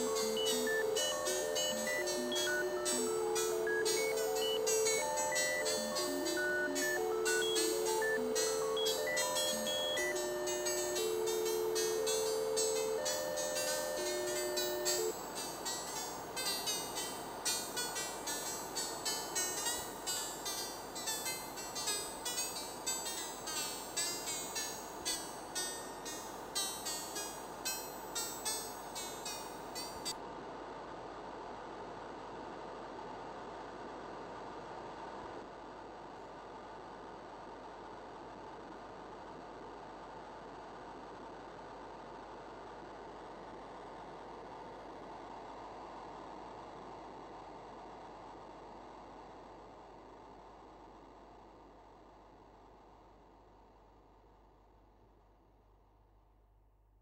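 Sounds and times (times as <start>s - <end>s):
held synth notes melody: 0.0s - 30.1s
high plucked synth notes: 0.0s - 30.1s
electronic clicks: 0.0s - 30.2s.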